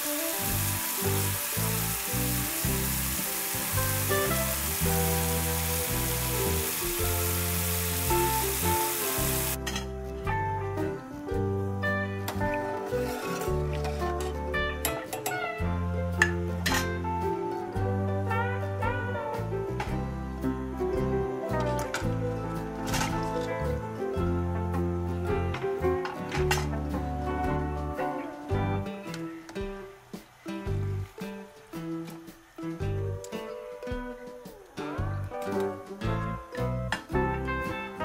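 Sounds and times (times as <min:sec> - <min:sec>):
sizzling hiss of frying: 0:00.0 - 0:09.8, 0:12.4 - 0:38.0
background music with guitar and bass: 0:00.0 - 0:38.0.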